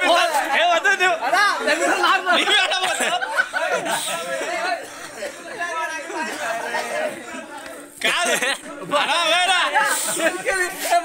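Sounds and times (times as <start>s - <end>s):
men talking and calling out: 0.0s - 11.0s
loud man's voice: 8.0s - 11.0s.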